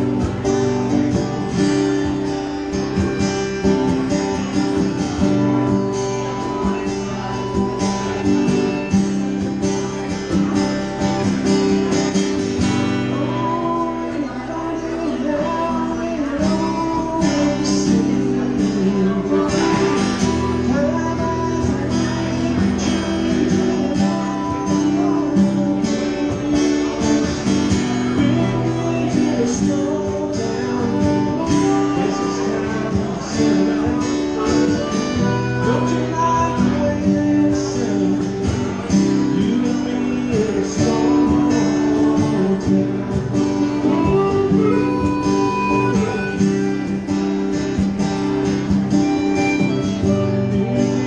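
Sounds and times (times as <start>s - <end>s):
acoustic guitars strumming chords: 0.0s - 51.0s.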